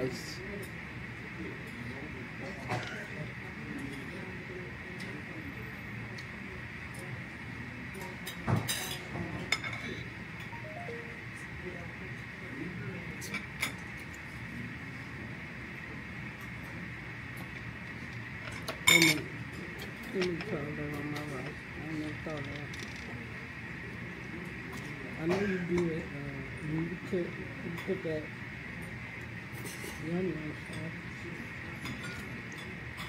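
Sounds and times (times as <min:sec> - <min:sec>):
steady high hum: 0:09.5 - 0:31.7.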